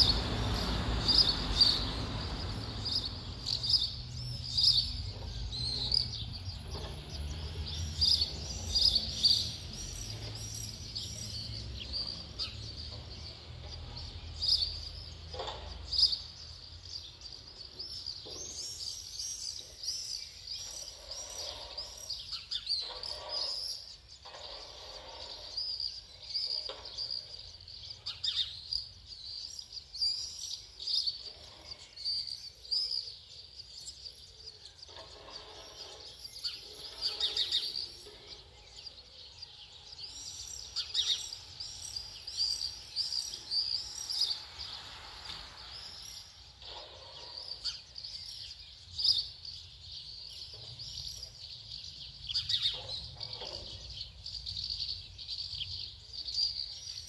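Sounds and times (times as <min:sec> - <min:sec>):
birds chirping: 0:00.0 - 0:57.0.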